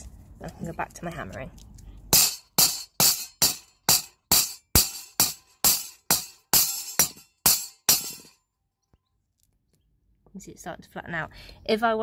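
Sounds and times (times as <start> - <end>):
hammer striking metal: 2.1 - 8.4.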